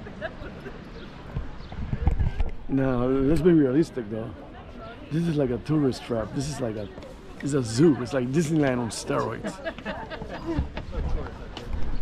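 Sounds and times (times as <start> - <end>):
faint distant voices: 0.0 - 12.0
low thumps on microphone: 1.3 - 2.6.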